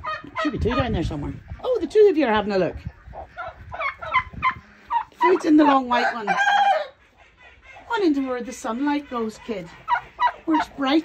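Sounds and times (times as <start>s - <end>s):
turkey calling: 0.0s - 11.0s.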